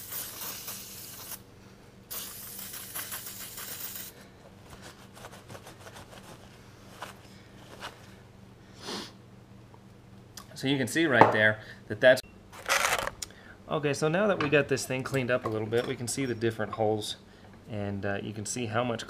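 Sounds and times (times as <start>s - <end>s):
aerosol spray can hissing: 0.0s - 1.4s, 2.1s - 4.2s.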